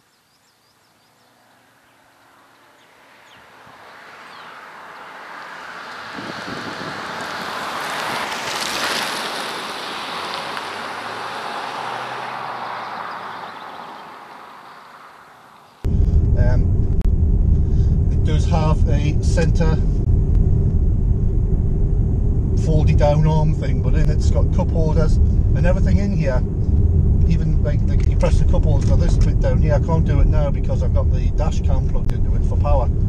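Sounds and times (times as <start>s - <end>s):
car driving past: 1.0s - 18.5s
car cabin low rumble: 15.8s - 33.0s.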